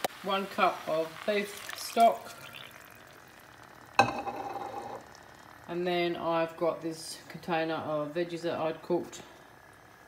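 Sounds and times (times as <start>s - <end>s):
faint sizzle of cooking pot: 0.0s - 10.0s
glass jug clinking: 2.1s - 3.1s, 4.0s - 5.1s.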